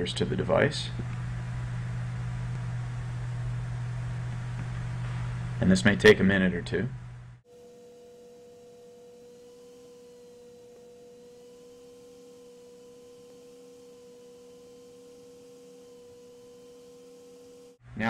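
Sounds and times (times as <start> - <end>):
steady pure tone: 0.0 - 7.4.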